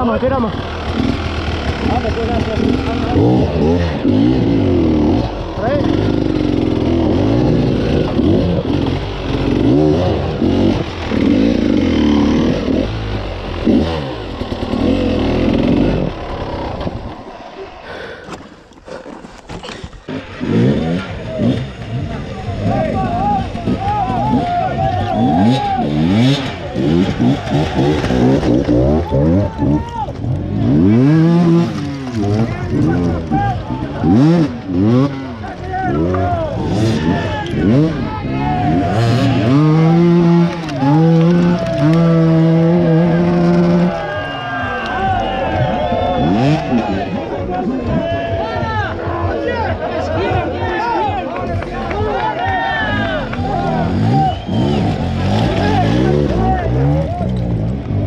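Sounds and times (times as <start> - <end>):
motorcycle engines revving: 0.0 - 58.0.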